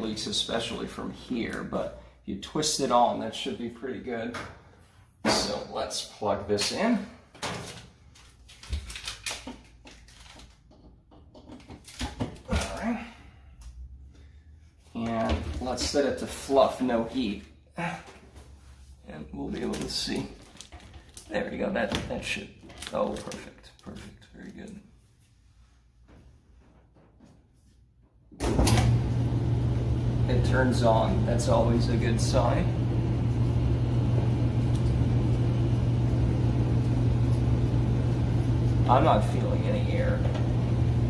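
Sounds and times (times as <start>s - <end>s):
clothes dryer running: 28.4s - 41.0s.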